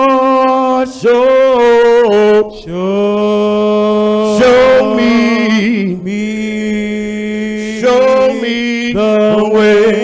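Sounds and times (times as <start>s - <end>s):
man singing a slow prayer song: 0.0s - 10.0s.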